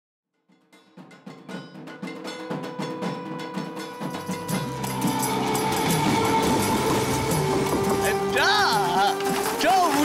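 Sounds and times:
film music with held tones: 0.7 - 10.0.

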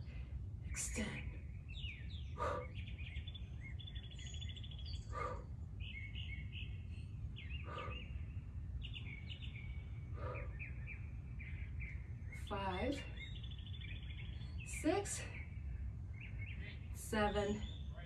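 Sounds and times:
low outdoor rumble: 0.0 - 18.0
songbirds chirping: 0.0 - 18.0.

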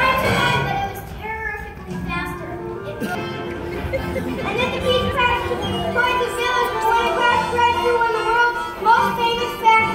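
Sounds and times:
children's voices: 0.0 - 9.9
music: 0.0 - 9.9.

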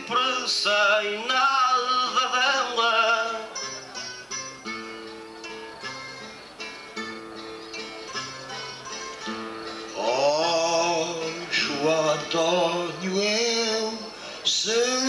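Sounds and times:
man singing: 0.0 - 3.6, 10.0 - 15.0
plucked guitars playing: 0.0 - 15.0.

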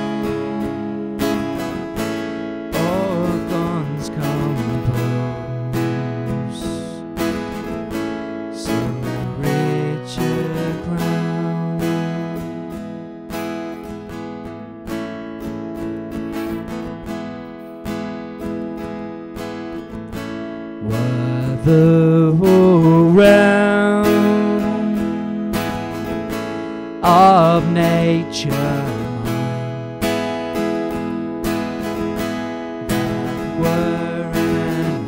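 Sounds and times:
acoustic guitar strumming: 0.0 - 35.0
man singing: 2.7 - 7.2, 8.5 - 12.7, 20.8 - 25.9, 27.0 - 30.0, 32.9 - 35.0.

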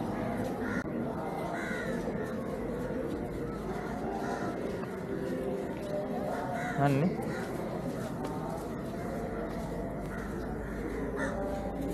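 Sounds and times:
murmur of people: 0.0 - 11.9
crow cawing: 0.6 - 0.9, 1.6 - 2.0, 3.8 - 4.6, 6.6 - 7.6, 10.1 - 11.4.

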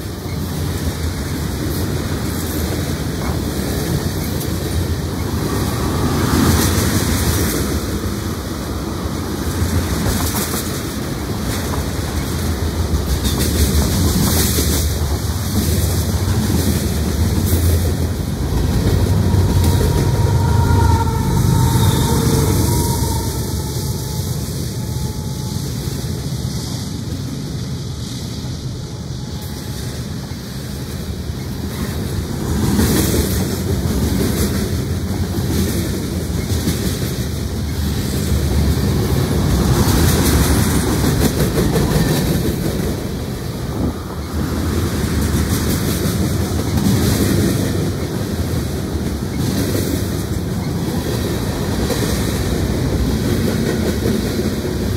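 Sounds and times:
freight train rumbling past: 0.0 - 54.9
faint squealing tone: 19.0 - 25.9.

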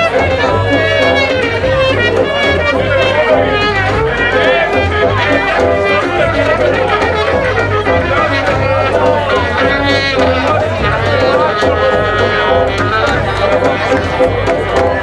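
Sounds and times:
audience voices: 0.0 - 15.0
brass band playing: 0.0 - 15.0
trumpet melody: 0.0 - 15.0.

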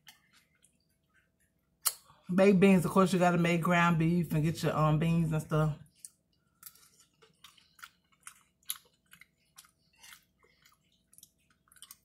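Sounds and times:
person chewing food: 0.0 - 2.1, 5.9 - 12.0.

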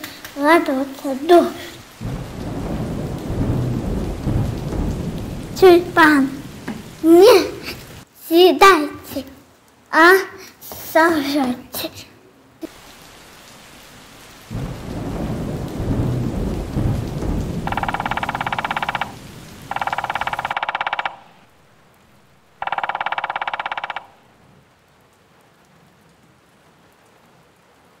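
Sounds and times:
rain falling: 0.0 - 28.0
low rumble of thunder: 1.8 - 8.0, 14.4 - 21.3
woodpecker drumming: 17.6 - 21.6, 22.5 - 24.3.

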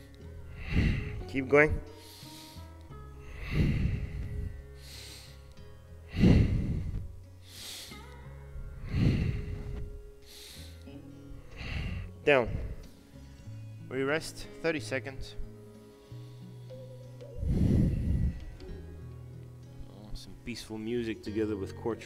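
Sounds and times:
man breathing hard: 0.0 - 13.6, 15.8 - 19.0
soft background music: 0.0 - 22.0.

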